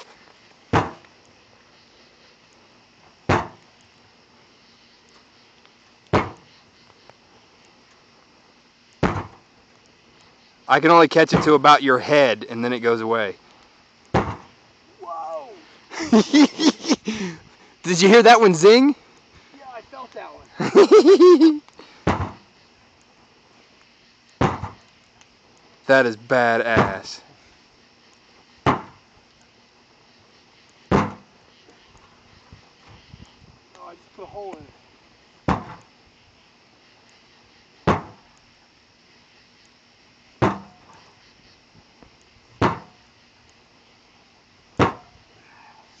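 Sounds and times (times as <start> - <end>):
pole whacking metal tank: 30.9 - 31.2, 35.5 - 35.8, 40.4 - 40.8, 42.6 - 43.0, 44.8 - 45.1.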